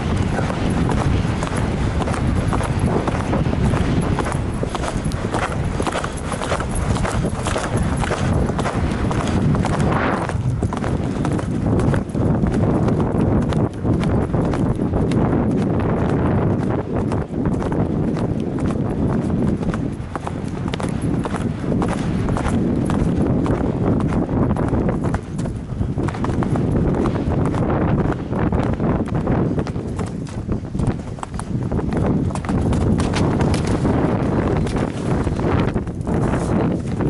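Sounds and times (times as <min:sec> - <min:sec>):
hoofbeats on turf: 0:00.0 - 0:37.0
wind noise: 0:00.0 - 0:37.0.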